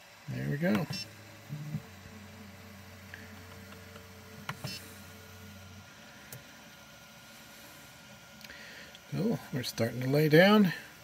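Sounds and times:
three d printer humming: 0.0 - 11.0.

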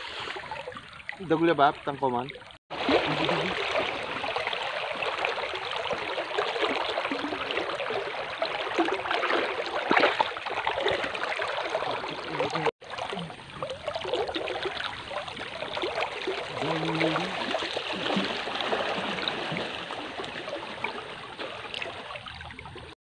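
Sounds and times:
river water sloshing: 0.0 - 22.9.

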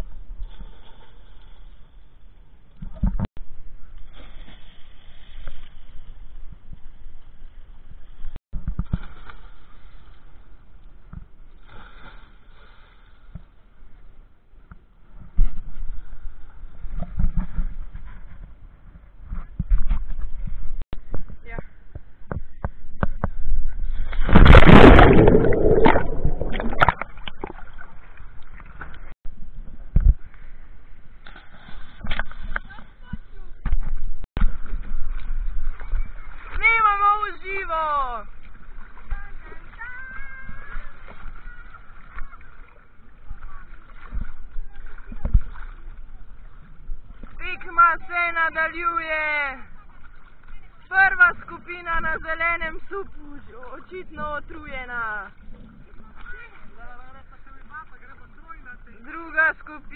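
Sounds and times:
smaller splashes: 8.0 - 13.5, 23.7 - 29.2, 34.4 - 47.7
big splash into water: 23.9 - 28.0.

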